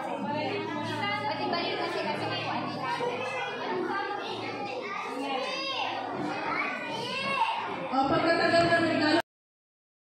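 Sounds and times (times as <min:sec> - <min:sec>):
adults talking: 0:00.0 - 0:09.2
children chattering and calling out: 0:00.0 - 0:09.2.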